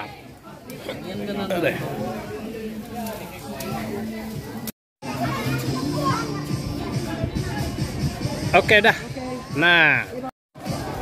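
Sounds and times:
people talking and calling: 0:00.0 - 0:11.0
music playing: 0:03.4 - 0:11.0.

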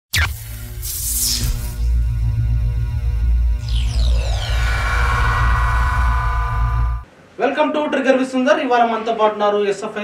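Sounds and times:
deep bass drone: 0:01.5 - 0:07.1
falling sweep of high tones: 0:03.6 - 0:07.1.

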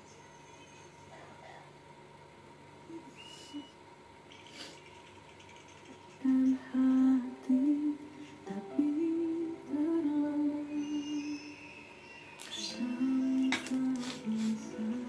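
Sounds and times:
woman humming a tune: 0:02.9 - 0:03.8, 0:06.2 - 0:11.6, 0:12.4 - 0:15.0.

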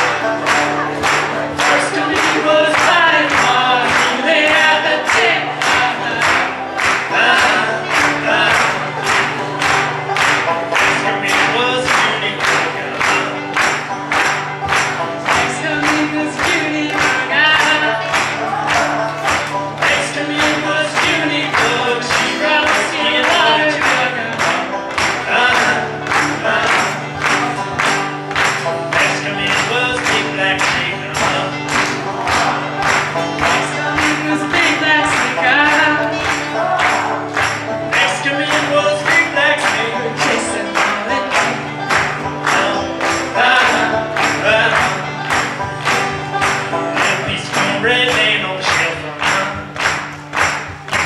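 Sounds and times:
acoustic guitar strummed: 0:00.0 - 0:51.0
banjo picked: 0:00.0 - 0:51.0.

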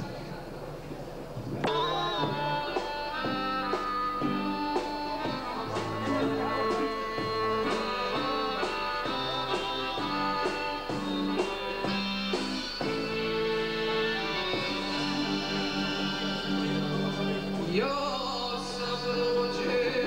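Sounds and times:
drum kit with cymbals: 0:01.6 - 0:17.9
accordion melody: 0:01.7 - 0:20.0.

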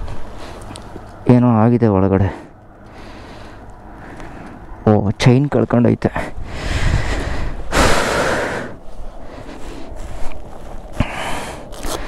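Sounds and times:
person breathing heavily: 0:02.3 - 0:04.7, 0:06.2 - 0:12.0.

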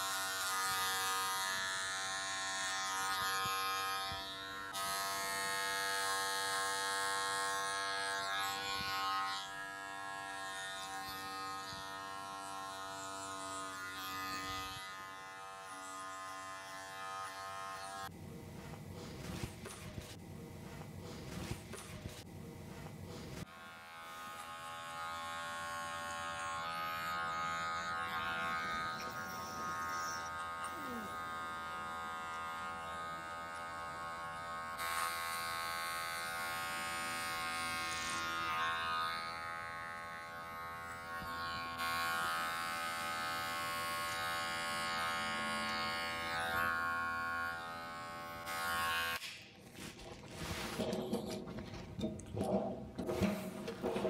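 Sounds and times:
electric hair clippers cutting hair: 0:00.0 - 0:49.5.

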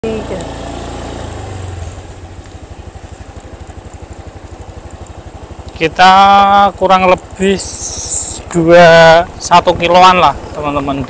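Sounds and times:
motorcycle engine: 0:00.0 - 0:11.0.

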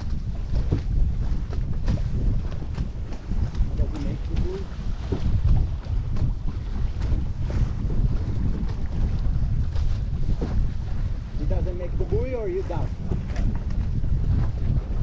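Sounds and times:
water splashing along a hull: 0:00.0 - 0:15.0
wind buffeting microphone: 0:00.0 - 0:15.0.

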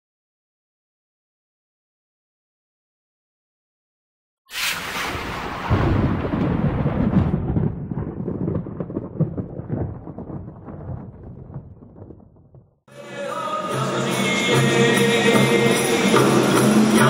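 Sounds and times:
thunder crash and rumble: 0:04.5 - 0:12.8.

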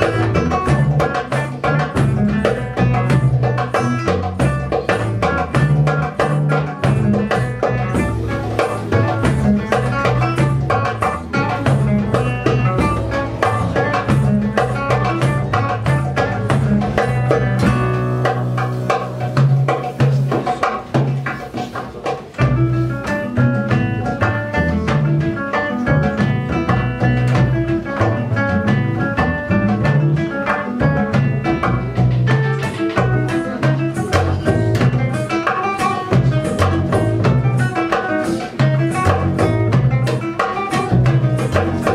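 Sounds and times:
classical guitar melody: 0:00.0 - 0:41.9
double bass line: 0:00.0 - 0:41.9
drum kit playing: 0:00.0 - 0:41.9.

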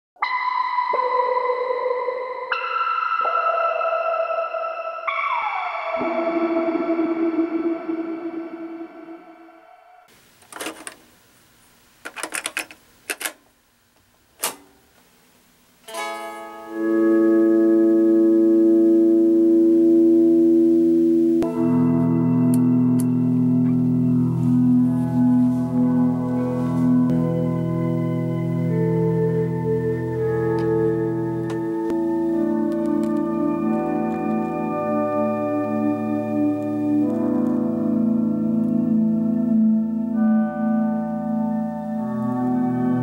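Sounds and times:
ambient electric guitar: 0:00.2 - 0:10.1, 0:15.9 - 0:43.0
sustained guitar drone chord: 0:16.0 - 0:40.0.

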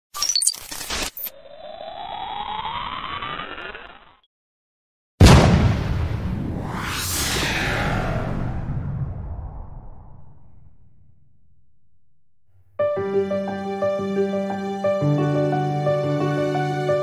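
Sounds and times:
crackling digital glitch bursts: 0:00.1 - 0:04.2
rising electronic sweep: 0:01.2 - 0:04.3, 0:06.4 - 0:11.0
loud boom with long rumble: 0:05.2 - 0:11.7
rising whoosh: 0:06.0 - 0:11.6.

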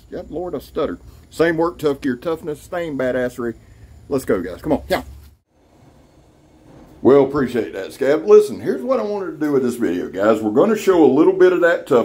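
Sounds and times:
faint low outdoor rumble: 0:00.0 - 0:12.0
faint steady background hiss: 0:00.0 - 0:12.0.

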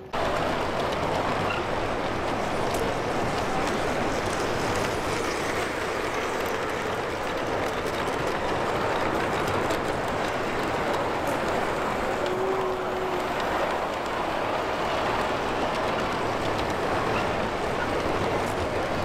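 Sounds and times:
model train rolling on track: 0:00.0 - 0:19.0.

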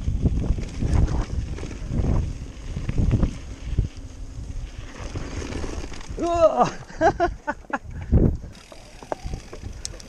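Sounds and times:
wind on microphone: 0:00.0 - 0:06.2, 0:07.9 - 0:10.0
bike jolts and rattles: 0:00.0 - 0:10.0
bike tyres on dirt: 0:00.0 - 0:10.0.

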